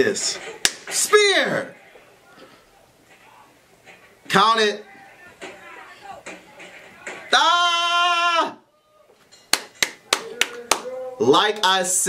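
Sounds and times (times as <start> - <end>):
hand claps: 0.4 - 1.0, 9.5 - 11.8.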